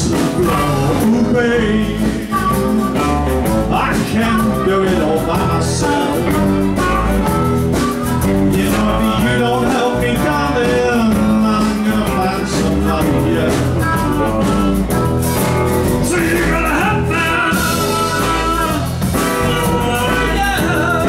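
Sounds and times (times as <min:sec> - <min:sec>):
blues band playing: 0:00.0 - 0:21.0
harmonica: 0:00.0 - 0:21.0.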